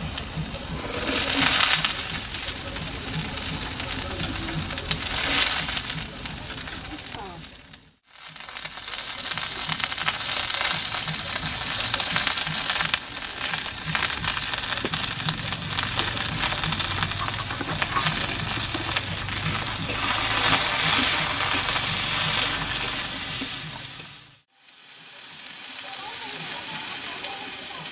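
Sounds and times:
vegetables sizzling in oil: 0.0 - 27.9
metal spatula stirring in wok: 0.2 - 7.2, 8.3 - 24.2.

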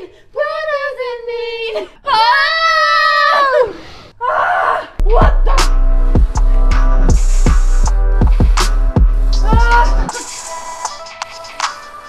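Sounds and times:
music with steady beat: 5.0 - 12.0.

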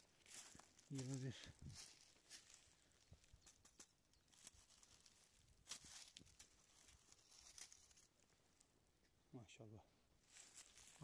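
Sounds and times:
dry leaves crackling underfoot: 0.0 - 8.7, 10.2 - 11.0.

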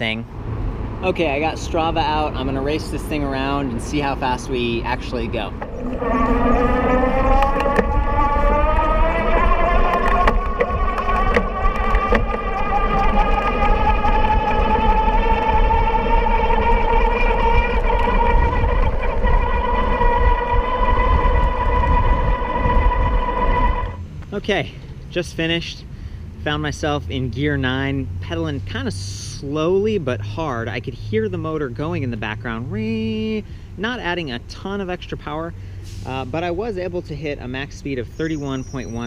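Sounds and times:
wind rumble on microphone: 0.0 - 24.1
electric hub motor whining: 3.2 - 24.0.

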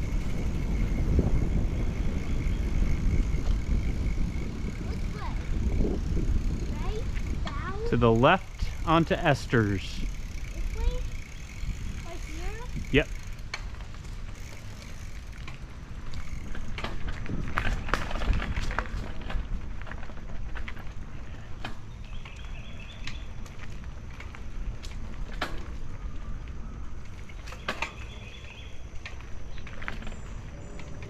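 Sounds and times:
wind on microphone: 0.0 - 8.0, 10.0 - 13.1, 16.4 - 19.8
bicycle tyres rumbling on dirt: 0.0 - 31.0
wind buffeting microphone: 0.0 - 31.0.

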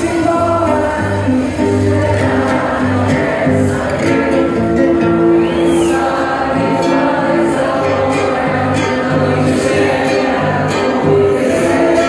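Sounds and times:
choir-like vocal chords: 0.0 - 12.0.

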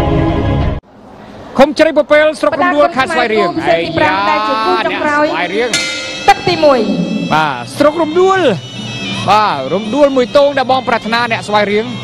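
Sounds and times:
commentator speaking: 1.7 - 8.6
nasal reed pipe melody: 4.8 - 12.0
sharp clink: 5.7 - 6.8.

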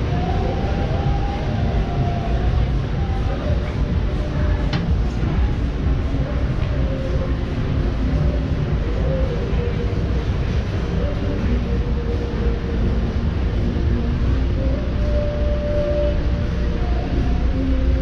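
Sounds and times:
music playing: 0.0 - 18.0
road traffic rumble: 0.0 - 18.0.

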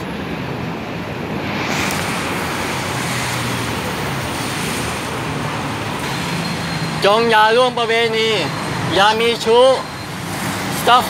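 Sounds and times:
city road traffic roar: 0.0 - 11.0
hiss: 1.4 - 5.3.

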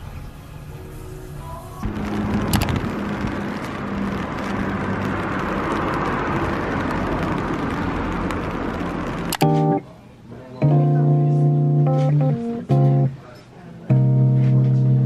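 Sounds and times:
low steady hum: 0.0 - 13.3
noisy hubbub: 0.0 - 15.0
clicks: 1.8 - 9.8.

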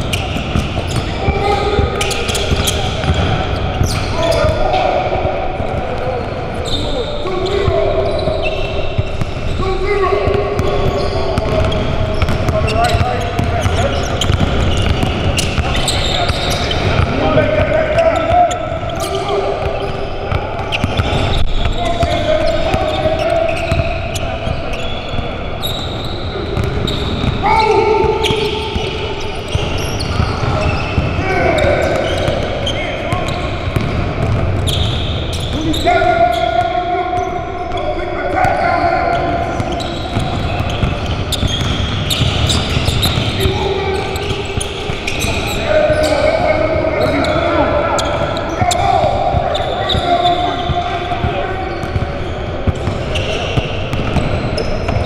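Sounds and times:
basketball bouncing on hardwood: 33.8 - 34.7, 40.1 - 43.4.

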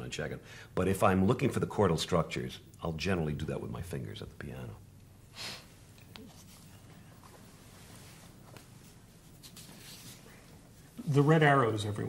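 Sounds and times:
low room hum: 0.0 - 12.0
paper rustling: 6.2 - 10.5.

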